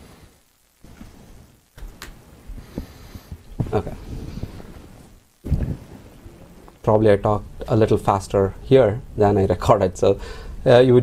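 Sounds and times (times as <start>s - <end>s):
faint room noise: 0.0s - 11.0s
man speaking: 6.8s - 11.0s.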